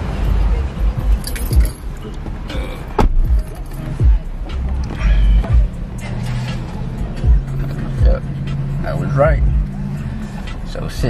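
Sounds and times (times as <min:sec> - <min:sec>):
keys jingling: 0:01.0 - 0:02.4, 0:03.0 - 0:04.2
low thumps: 0:01.0 - 0:05.8.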